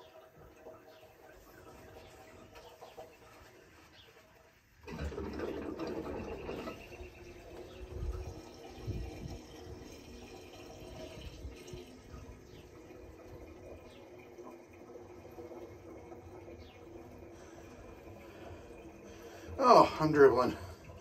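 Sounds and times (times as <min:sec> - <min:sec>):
fuel pouring into a tank: 0:00.0 - 0:21.0.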